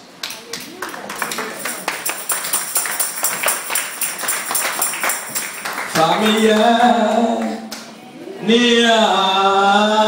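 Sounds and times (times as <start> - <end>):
rhythmic hand clapping: 0.2 - 8.0.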